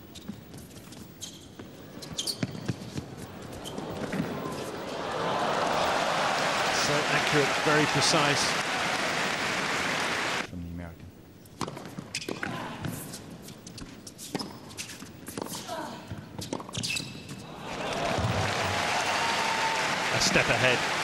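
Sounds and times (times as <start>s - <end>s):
crowd applause: 3.2s - 10.5s, 17.5s - 21.0s.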